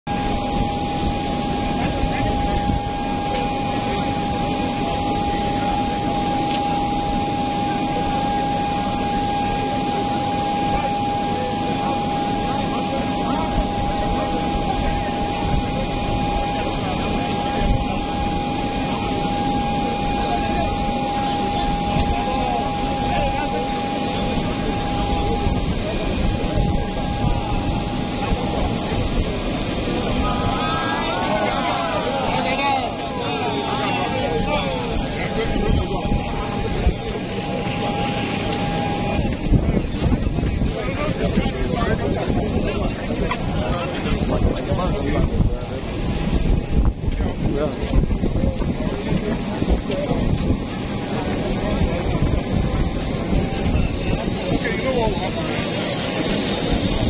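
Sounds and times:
crowd voices: 0.0s - 57.0s
jet turbine whine: 0.0s - 57.0s.

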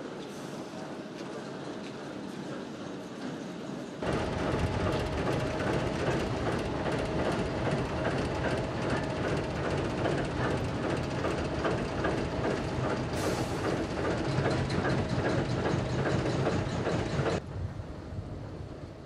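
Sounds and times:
rail transporter rumbling: 0.0s - 19.0s
wheels clicking on track: 4.0s - 17.4s.

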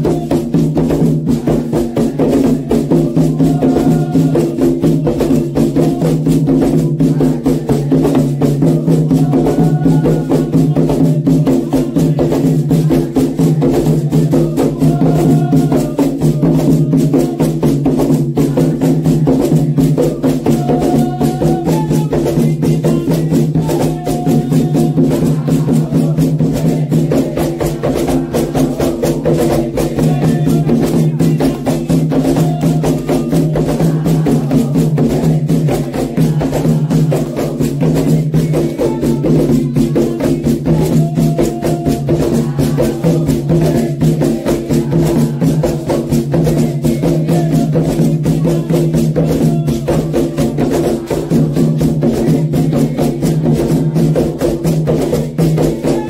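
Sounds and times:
hand drums: 0.0s - 56.0s
voices singing: 0.0s - 56.0s.

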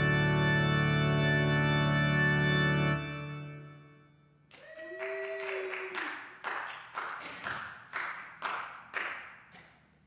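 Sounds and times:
people clapping slowly in a hall: 4.5s - 10.0s.

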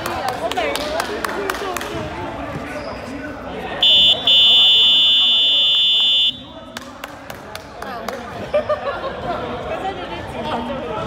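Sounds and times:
basketball buzzer blasts: 3.8s - 6.4s.

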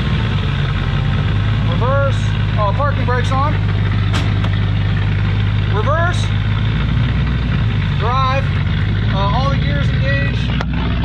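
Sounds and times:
pickup truck engine idling: 0.0s - 11.0s.

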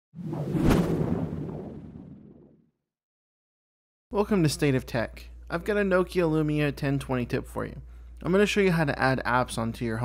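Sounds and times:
whoosh landing on sharp hit: 0.2s - 2.4s
low fading rumble: 0.2s - 2.5s.

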